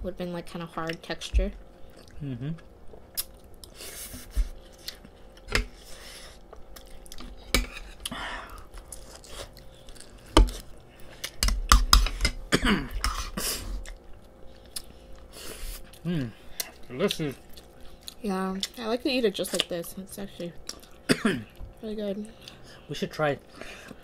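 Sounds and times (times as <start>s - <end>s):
people chewing: 1.8s - 24.0s.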